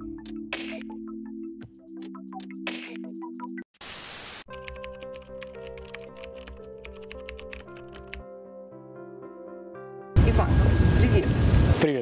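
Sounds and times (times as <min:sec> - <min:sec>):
background music with held notes: 0:00.0 - 0:03.6, 0:04.5 - 0:11.2
static hiss: 0:03.8 - 0:04.5
computer keyboard typing clicks: 0:04.5 - 0:08.2.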